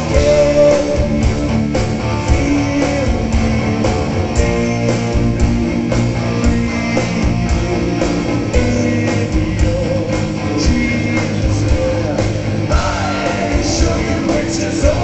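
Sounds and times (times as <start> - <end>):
heavy metal band playing live: 0.0 - 15.0.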